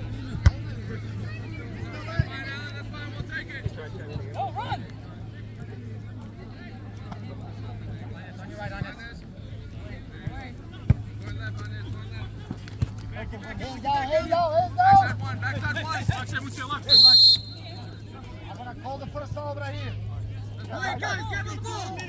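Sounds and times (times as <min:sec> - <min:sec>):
soccer ball being kicked: 0:00.3 - 0:00.7.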